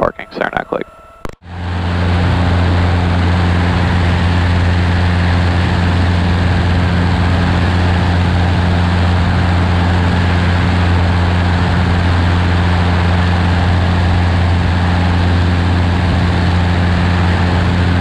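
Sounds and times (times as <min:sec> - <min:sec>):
airplane engine and propeller droning: 0:00.0 - 0:18.0.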